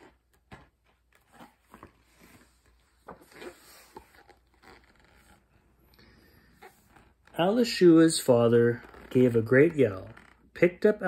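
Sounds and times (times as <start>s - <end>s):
book pages rustling: 0.0s - 7.6s.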